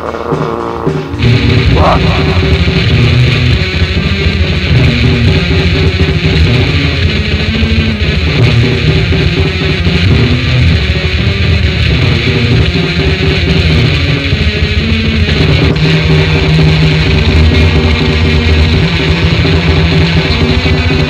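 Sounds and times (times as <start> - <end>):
black metal music: 0.0 - 21.0.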